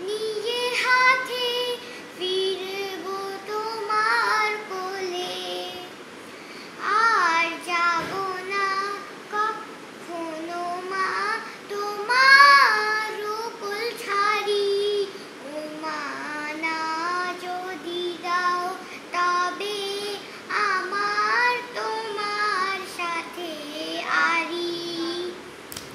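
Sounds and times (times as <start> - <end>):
girl singing unaccompanied: 0.0 - 6.0, 6.7 - 25.5.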